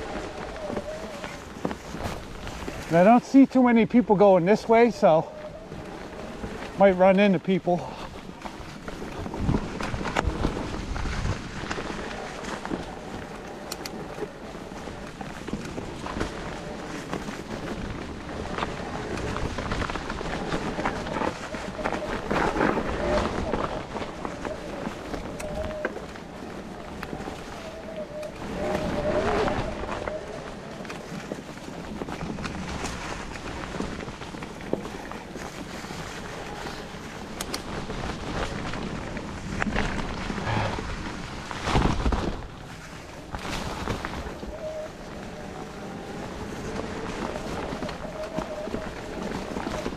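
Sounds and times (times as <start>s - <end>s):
bike clicking and rattling: 0.0s - 49.9s
bike tyres rolling through leaves: 0.0s - 49.9s.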